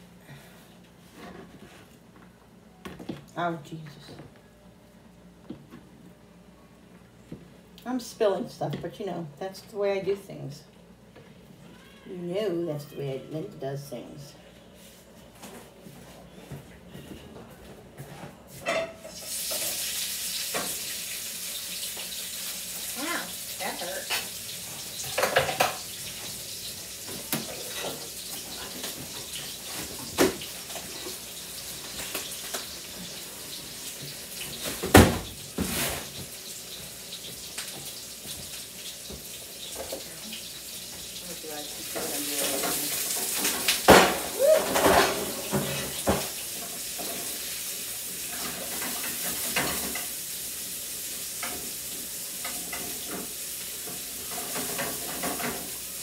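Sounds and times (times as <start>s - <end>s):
utensils and pans clanking: 18.6s - 20.9s, 24.0s - 33.2s, 41.9s - 47.4s, 48.2s - 50.2s, 52.4s - 55.8s
onions sizzling in a frying pan: 19.0s - 56.0s.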